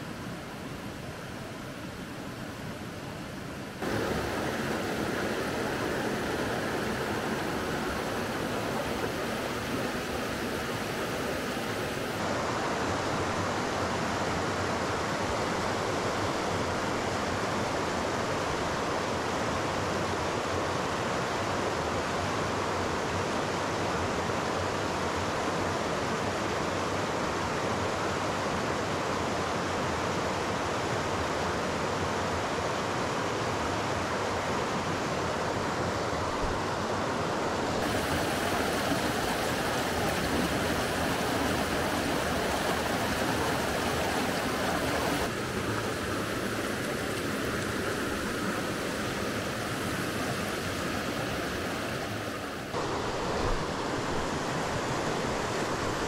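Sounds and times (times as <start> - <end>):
flowing river water: 0.0 - 56.0.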